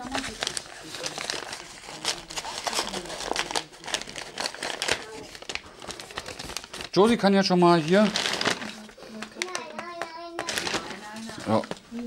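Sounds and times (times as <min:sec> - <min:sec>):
paper bag crinkling: 0:00.0 - 0:11.7.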